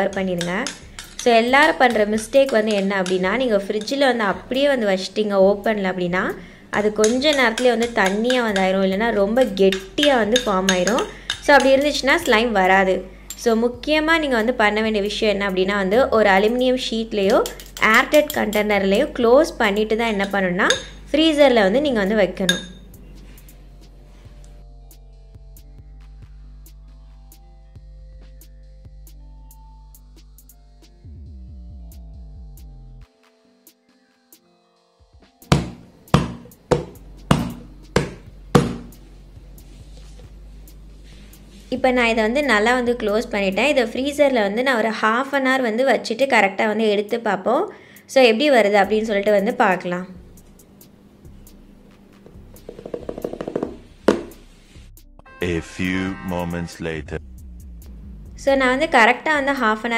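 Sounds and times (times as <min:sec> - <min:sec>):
woman talking: 0:00.0 - 0:22.7, 0:41.7 - 0:50.2, 0:58.4 - 0:59.9
metal spoon scraping glass cup: 0:00.4 - 0:04.0, 0:07.0 - 0:08.8, 0:09.4 - 0:12.4
hands thumping plastic container lid: 0:35.5 - 0:38.9.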